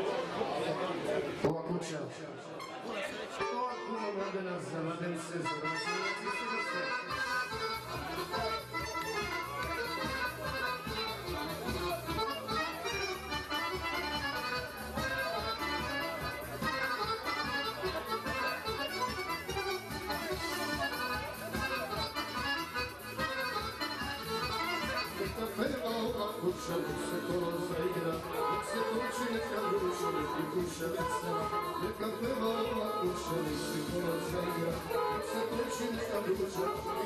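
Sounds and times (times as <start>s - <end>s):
people talking: 0.0s - 37.0s
accordion folk dance music: 2.5s - 37.0s.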